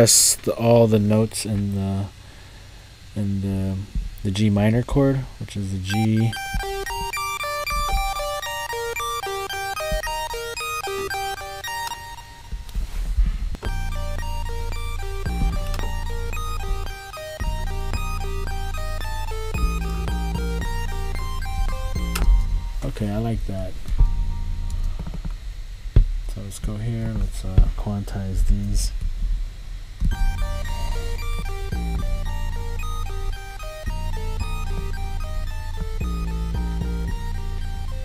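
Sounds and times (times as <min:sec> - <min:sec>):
deep bass with beat: 0:05.9 - 0:11.8, 0:12.4 - 0:27.8, 0:30.0 - 0:38.0
chiptune synth arpeggio: 0:05.9 - 0:12.5, 0:13.6 - 0:23.2, 0:24.0 - 0:25.2, 0:30.1 - 0:38.0.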